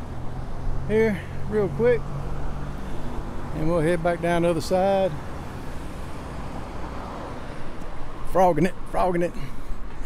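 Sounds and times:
cars passing: 0.0s - 10.0s.

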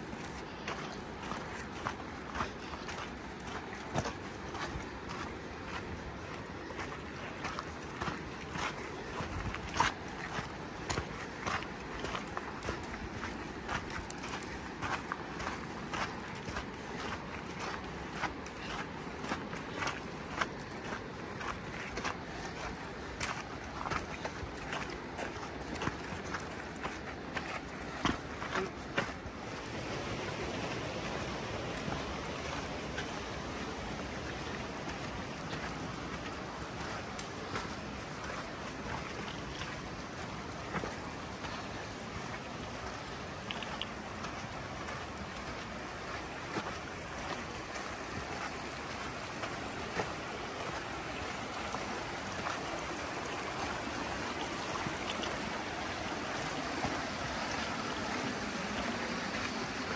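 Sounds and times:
footsteps crunching on dirt trail: 0.0s - 59.9s.

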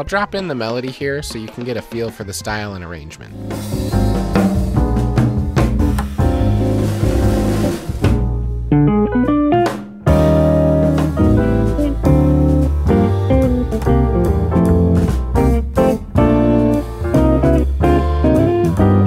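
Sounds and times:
drum kit played with sticks: 3.3s - 19.0s
guitar melody: 3.3s - 19.0s.

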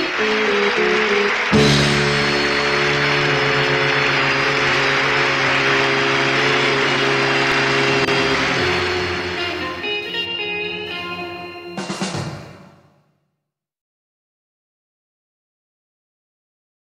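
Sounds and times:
audience applause: 0.0s - 12.1s
band holding a final chord: 0.0s - 12.8s.

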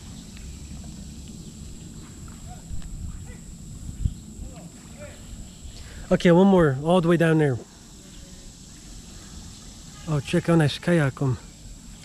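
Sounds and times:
insect drone: 0.0s - 12.0s.

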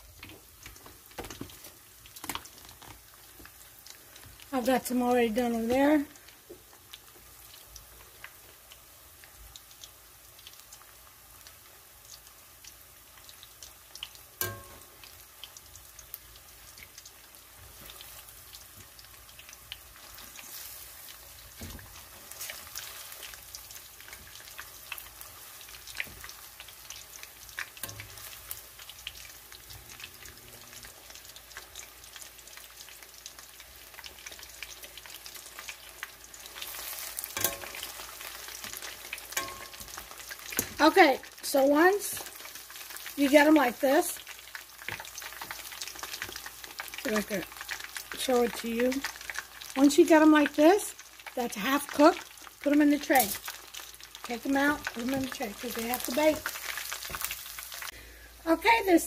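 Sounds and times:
chicken deep-frying in oil: 0.0s - 59.0s.

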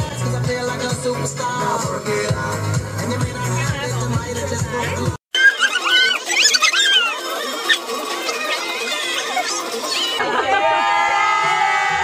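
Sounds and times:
balloons squeaking: 5.4s - 10.2s.

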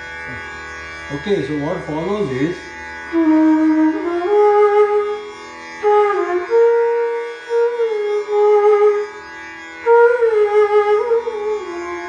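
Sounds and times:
bamboo flute playing slow phrases: 3.1s - 12.0s.

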